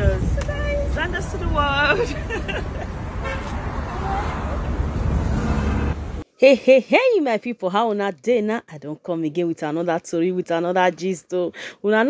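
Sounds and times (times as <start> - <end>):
street traffic rumble: 0.0 - 6.3.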